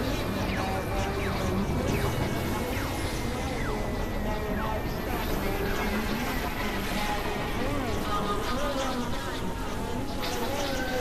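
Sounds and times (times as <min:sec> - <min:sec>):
synthesizer drone: 0:00.0 - 0:11.0
wavering gliding tones: 0:00.0 - 0:11.0.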